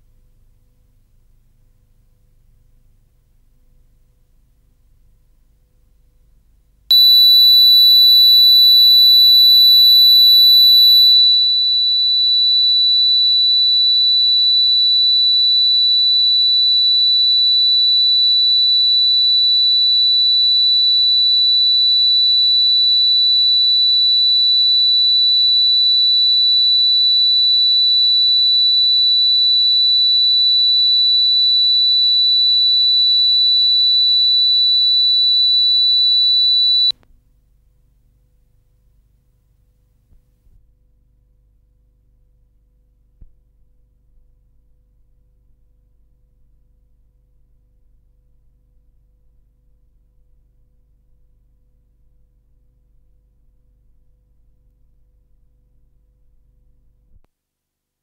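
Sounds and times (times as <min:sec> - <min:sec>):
higher second test tone: 0:06.9 - 0:16.7
high-pitched sine test tone: 0:06.9 - 0:37.0.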